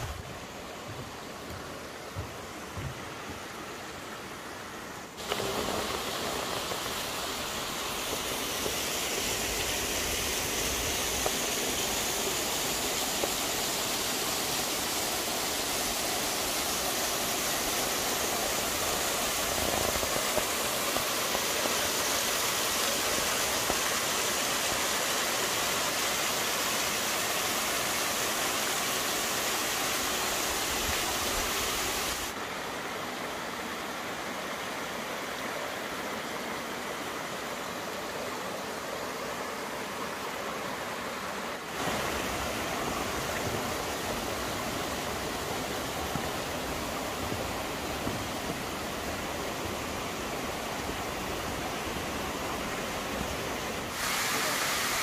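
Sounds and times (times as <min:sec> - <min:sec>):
stream rushing over rocks: 0:00.0 - 0:55.0.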